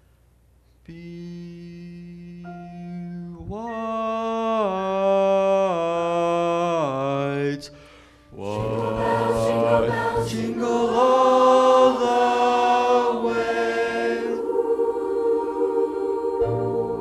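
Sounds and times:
man singing held note: 0:00.8 - 0:06.0
choir singing sustained chords: 0:07.7 - 0:17.0.

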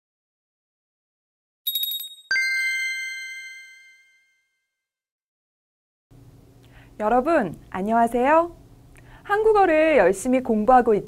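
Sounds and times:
bright tinkling chime notes: 0:01.7 - 0:04.5
high ringing ding: 0:01.7 - 0:04.5.

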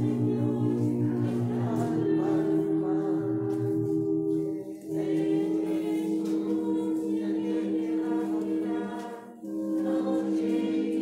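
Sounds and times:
voices singing a slow hymn: 0:00.0 - 0:11.0.

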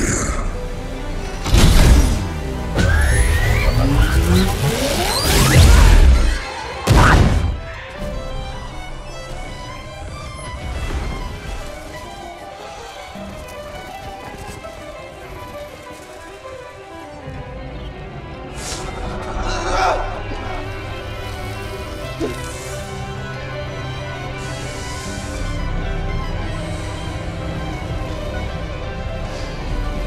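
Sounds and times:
film score with held notes: 0:00.0 - 0:30.0.

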